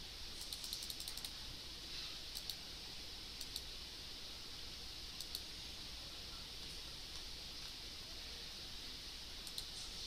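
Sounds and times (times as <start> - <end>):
low room hiss: 0.0 - 10.0
computer keyboard typing: 0.4 - 1.3.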